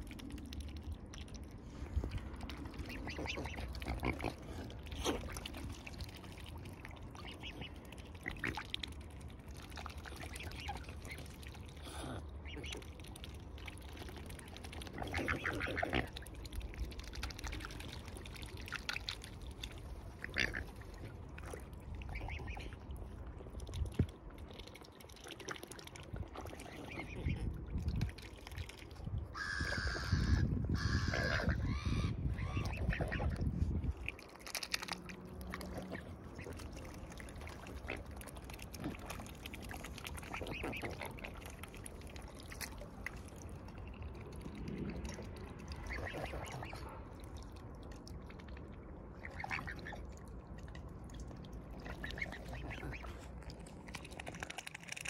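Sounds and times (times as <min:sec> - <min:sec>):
swan bills clicking in water: 0:00.0 - 0:29.9, 0:32.5 - 0:55.0.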